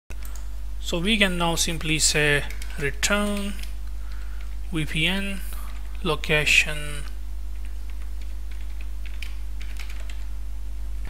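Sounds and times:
low electrical hum: 0.1 - 11.0
computer keyboard typing: 0.2 - 0.5, 1.7 - 4.7, 5.7 - 6.0, 7.5 - 10.3.

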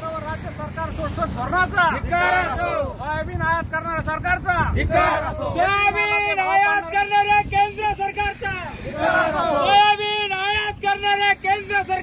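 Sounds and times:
men chanting slogans: 1.2 - 3.3, 3.9 - 12.0.

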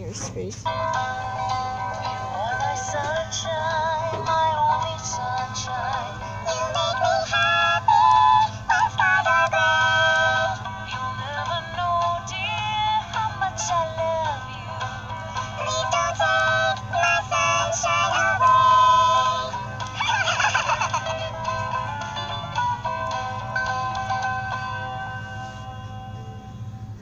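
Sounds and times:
steady low hum: 0.0 - 27.0
toy singing electronic song: 0.7 - 26.4.

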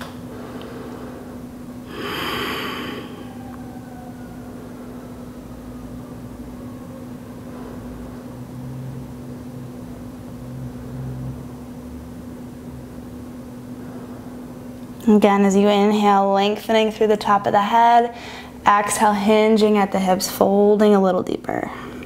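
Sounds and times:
steady low hum: 0.0 - 22.0
person breathing out: 0.3 - 3.5.

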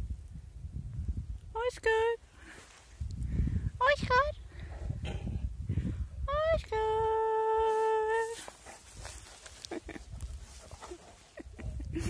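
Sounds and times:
faint rustling: 7.6 - 12.0.

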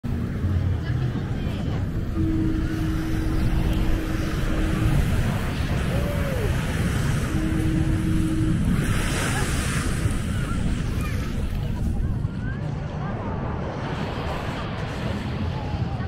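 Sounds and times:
steady humming tone: 0.1 - 16.0
wind on microphone: 0.1 - 16.0
short falling tone: 2.2 - 10.6.

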